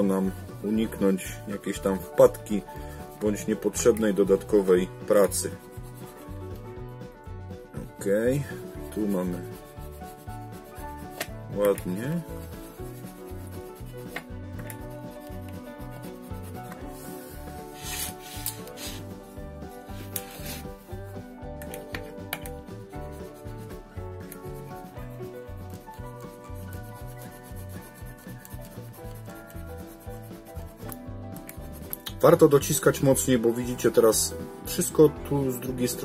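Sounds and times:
pencil scratching on paper: 0.0 - 6.7, 8.1 - 21.2, 22.6 - 32.1
background music with low beat: 0.0 - 36.0.

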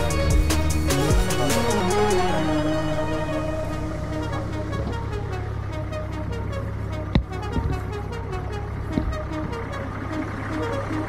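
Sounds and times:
jeep engine running: 0.0 - 11.0
music: 0.0 - 11.0.

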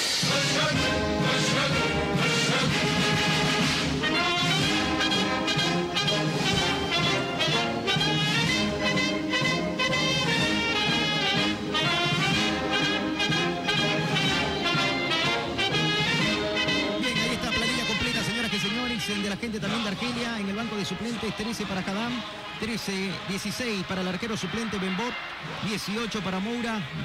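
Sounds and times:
brass background music: 0.0 - 27.0.

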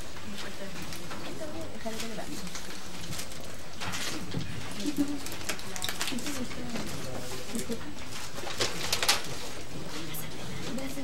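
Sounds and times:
low background murmur: 0.0 - 11.0
paper rustling: 0.0 - 11.0.

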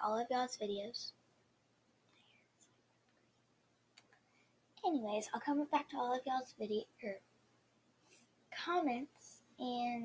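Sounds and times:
girl speaking: 0.0 - 1.2, 4.8 - 7.3, 8.5 - 10.0.

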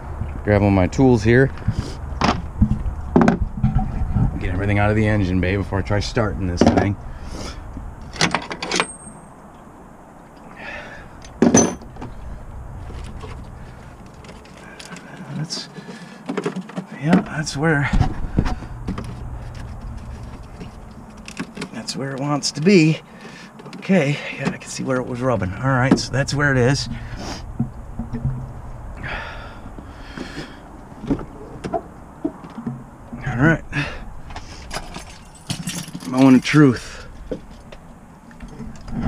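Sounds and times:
steady low hum: 0.0 - 8.2, 9.0 - 16.3, 16.9 - 39.0
keys jangling: 34.7 - 36.2.

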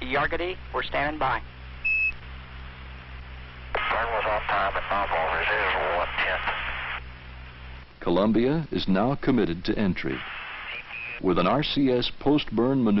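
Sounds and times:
radio static hiss: 0.0 - 13.0
muffled voice over radio: 3.8 - 7.0.

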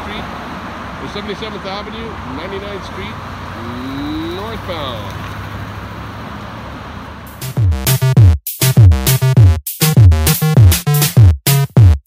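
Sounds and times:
road traffic passing: 0.0 - 11.3
loud electronic music: 7.3 - 12.0
deep bass drum hits: 7.4 - 12.0.

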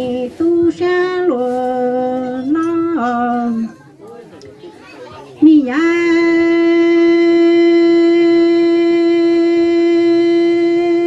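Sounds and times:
woman singing into a microphone: 0.0 - 3.8, 5.4 - 11.0.

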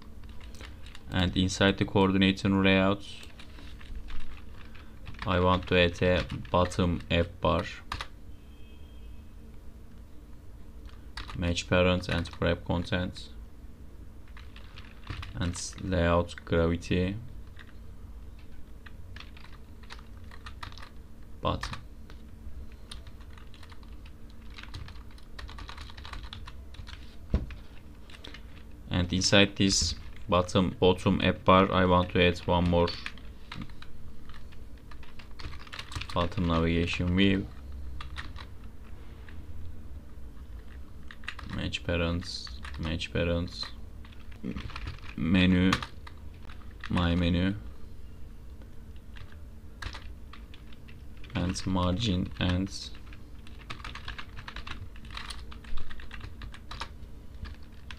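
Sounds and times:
steady low hum: 0.0 - 57.9
typing on computer keyboard: 19.2 - 20.9, 22.9 - 27.0, 33.0 - 36.6, 40.6 - 41.6, 44.0 - 47.0, 49.1 - 51.5, 52.4 - 57.9.

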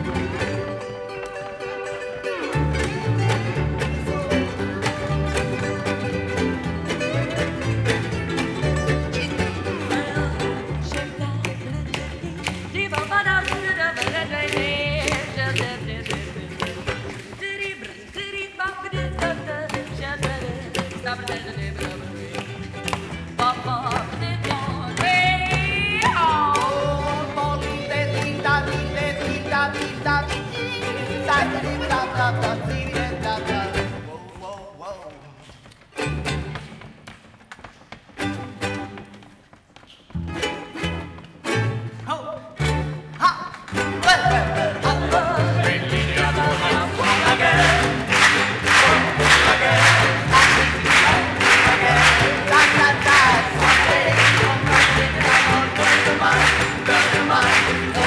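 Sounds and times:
acoustic string band playing: 0.0 - 34.6, 35.8 - 37.3, 38.0 - 39.6, 40.2 - 58.0
person singing: 0.3 - 7.7, 8.7 - 35.4, 42.1 - 58.0.

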